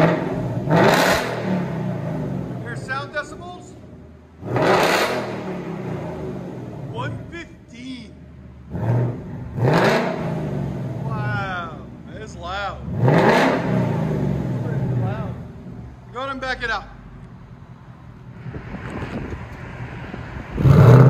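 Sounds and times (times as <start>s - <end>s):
car engine revving: 0.0s - 16.0s, 18.1s - 21.0s.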